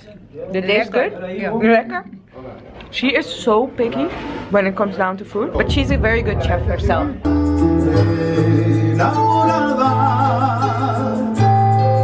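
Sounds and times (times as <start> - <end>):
electric keyboard chords and bass: 7.2 - 12.0
man singing with vibrato: 7.3 - 12.0.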